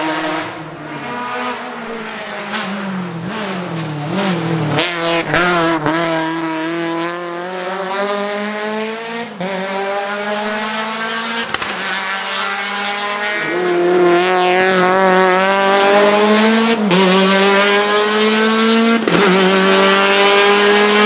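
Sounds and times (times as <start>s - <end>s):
race car accelerating hard: 0.0s - 21.0s.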